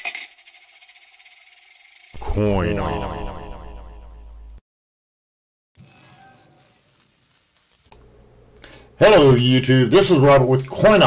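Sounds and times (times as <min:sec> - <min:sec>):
coins clattering and clinking: 0:00.0 - 0:02.2.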